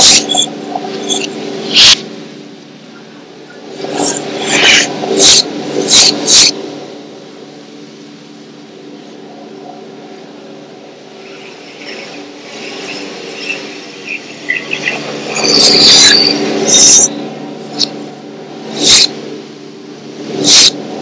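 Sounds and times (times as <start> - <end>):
faint scattered high sounds: 0.0 - 21.0.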